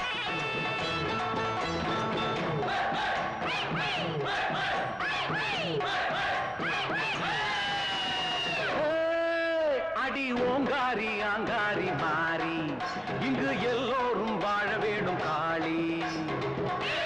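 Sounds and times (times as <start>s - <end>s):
folk-style film song with drums: 0.0s - 17.0s
group of voices whooping: 6.6s - 8.9s.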